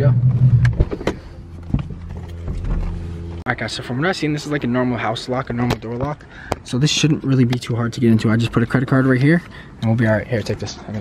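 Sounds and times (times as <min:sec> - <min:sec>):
car cabin hum: 0:00.0 - 0:04.1.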